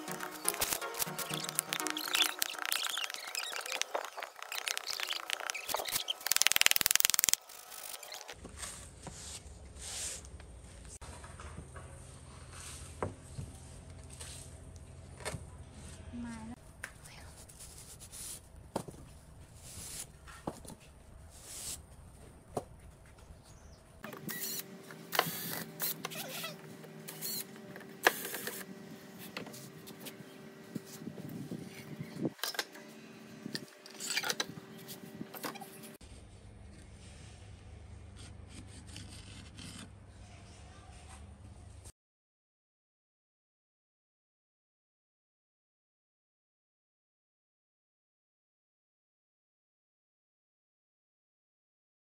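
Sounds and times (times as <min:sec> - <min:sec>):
wooden stick tamping cement mix: 0:00.4 - 0:07.4.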